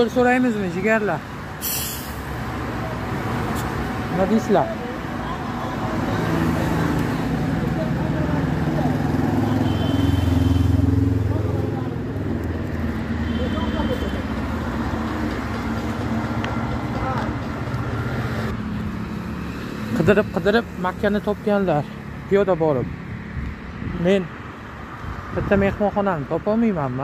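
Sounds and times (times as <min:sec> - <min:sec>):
road traffic: 0:00.0 - 0:27.0.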